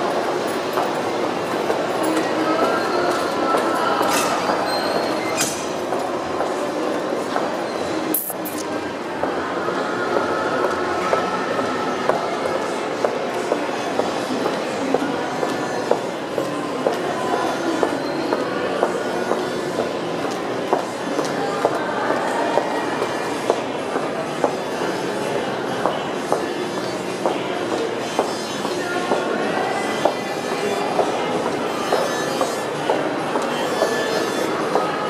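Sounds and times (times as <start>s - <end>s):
busy indoor ambience hum: 0.0s - 35.0s
mall hubbub: 0.0s - 35.0s.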